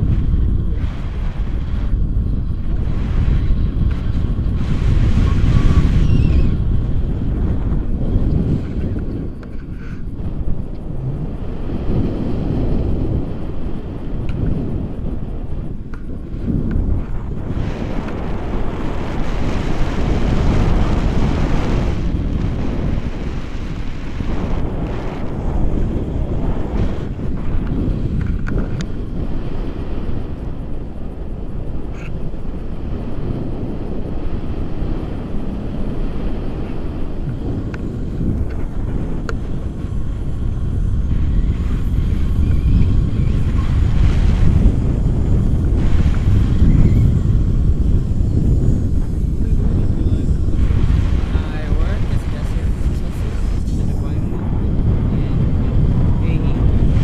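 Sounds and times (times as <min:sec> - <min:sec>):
wind rushing over microphone: 0:00.0 - 0:57.0.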